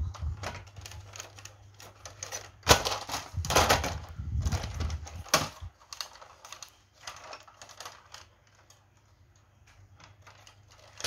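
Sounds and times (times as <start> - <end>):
plastic toy car clicks and knocks: 0.1 - 8.8, 9.6 - 11.0.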